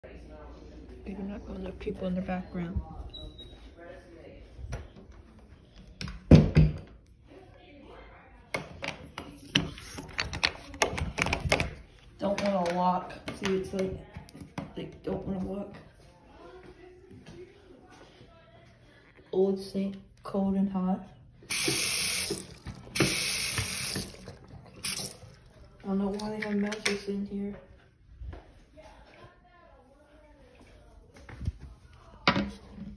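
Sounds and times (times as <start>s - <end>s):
water running from faucet into sink: 21.5s - 25.2s.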